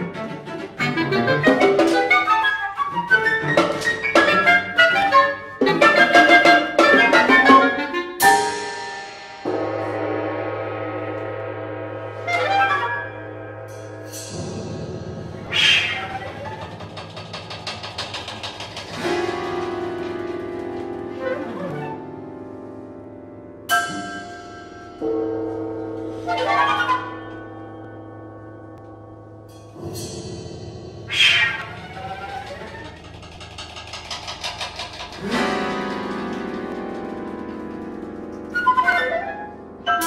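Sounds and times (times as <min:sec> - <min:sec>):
chamber music: 0:00.0 - 0:40.0
sliding pitched tone: 0:09.8 - 0:22.2, 0:28.8 - 0:40.0
fast percussion rattle: 0:13.7 - 0:21.9, 0:29.5 - 0:39.4.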